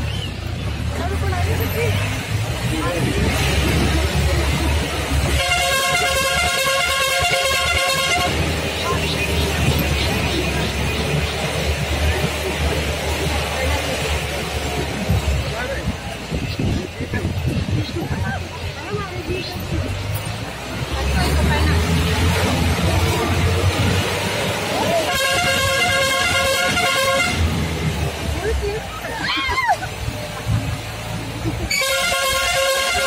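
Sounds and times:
vehicle rumbling on rough road: 0.0 - 33.0
vehicle horn: 5.2 - 8.6, 25.0 - 27.6, 31.7 - 33.0.

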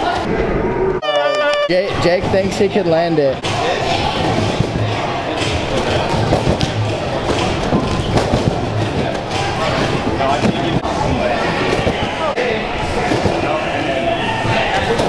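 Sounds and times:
music: 3.4 - 10.8.

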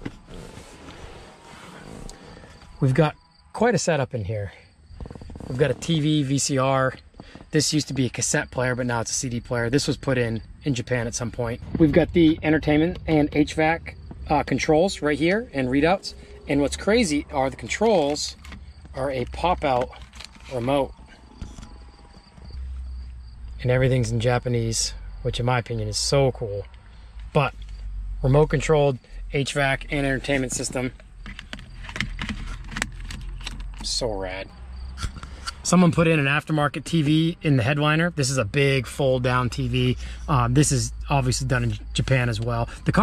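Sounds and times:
clothes rustling on leather seat: 0.0 - 2.6, 4.9 - 6.0
faint insects chirping: 0.2 - 32.6, 33.9 - 43.0
low microphone rumble: 4.8 - 19.7.

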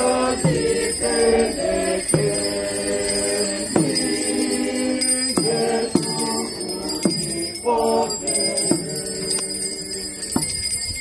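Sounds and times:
group singing a hymn: 0.0 - 10.4
small bells jingling: 0.0 - 11.0.

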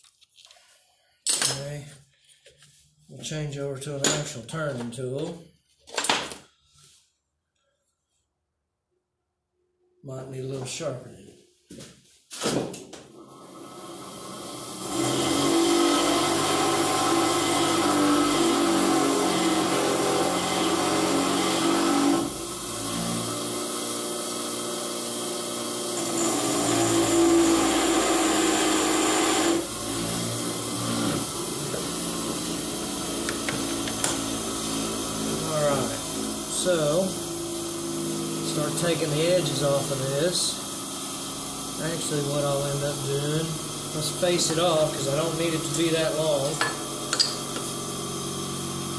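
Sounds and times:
bench grinder running: 13.2 - 48.9
tool grinding on wheel: 14.0 - 23.8, 25.9 - 48.6.

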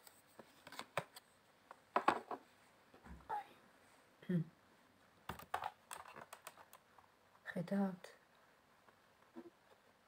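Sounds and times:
woman humming hmm: 4.2 - 4.6.

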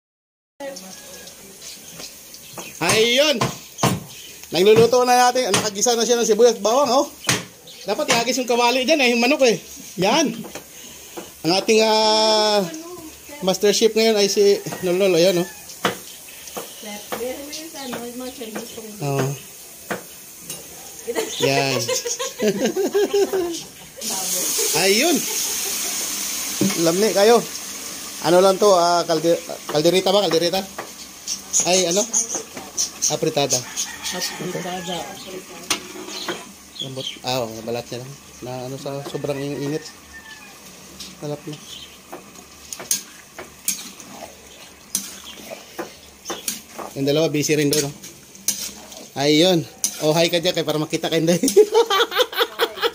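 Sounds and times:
chicken sizzling in a pot: 0.6 - 52.9
metal spatula scraping a pot: 30.8 - 36.6, 42.0 - 50.8.

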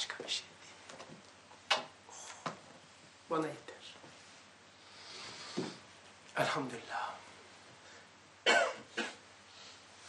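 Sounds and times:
man coughing: 8.4 - 9.2.

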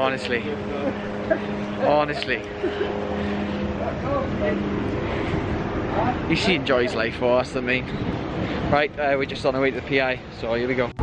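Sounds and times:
constant noise haze: 0.0 - 11.0
mechanical hum: 0.0 - 11.0.

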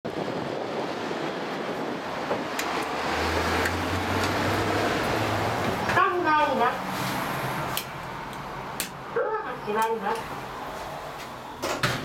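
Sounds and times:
wind: 0.0 - 12.0
road traffic: 0.1 - 12.0.

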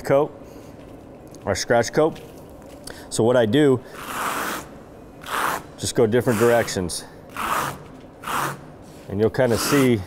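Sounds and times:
squeegee scraping wet concrete: 3.8 - 10.0.

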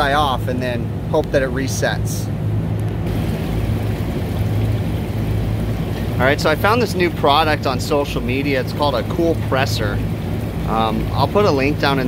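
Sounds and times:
steady low hum: 0.0 - 12.0
water splashing over compressor: 0.0 - 12.0.

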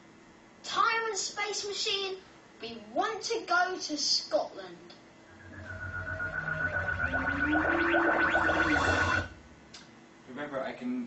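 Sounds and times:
held high tone over bending tone: 5.3 - 9.6.

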